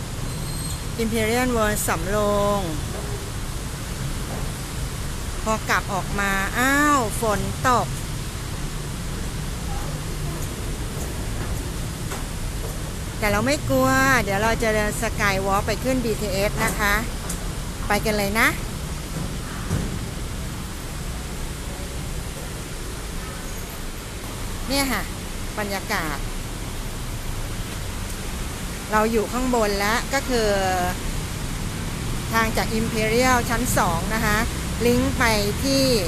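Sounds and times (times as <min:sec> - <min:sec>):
rain falling: 0:00.0 - 0:36.0.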